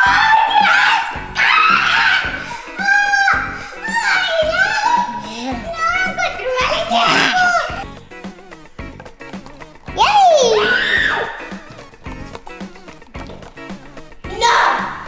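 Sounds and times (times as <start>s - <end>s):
girls laughing and exclaiming: 0.0s - 7.8s, 10.0s - 11.6s
background music with steady beat: 0.0s - 15.0s
girl squealing: 1.4s - 7.8s, 10.0s - 11.5s.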